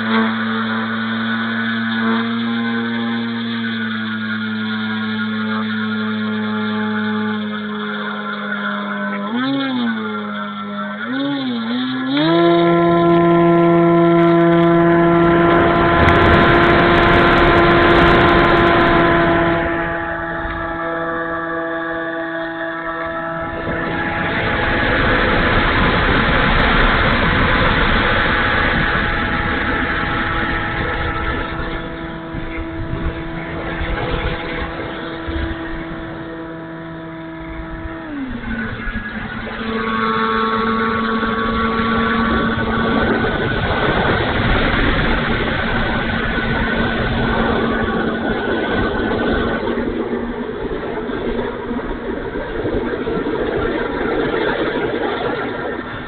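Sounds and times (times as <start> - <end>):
model plane motor whining: 0.0 - 56.0
wind rushing over microphone: 11.6 - 56.0.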